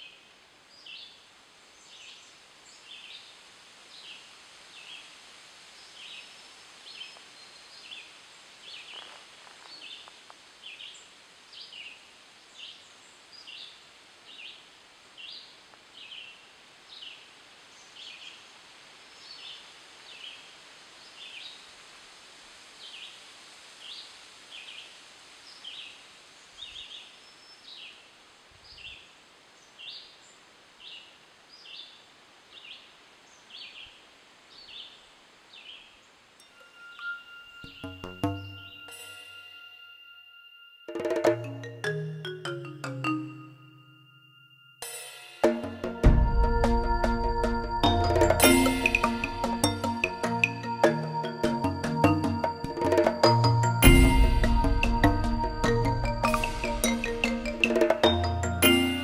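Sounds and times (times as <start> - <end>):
faint steady hiss: 0.0 - 59.0
short high chirp: 36.4 - 41.2, 46.3 - 50.8, 51.5 - 59.0.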